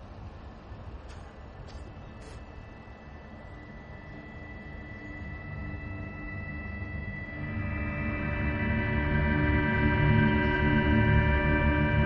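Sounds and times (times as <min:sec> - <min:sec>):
droning hum of held tones: 0:00.0 - 0:12.0.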